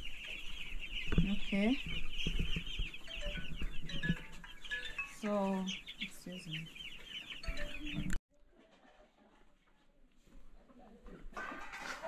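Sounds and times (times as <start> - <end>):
chicks cheeping: 0.0 - 8.2.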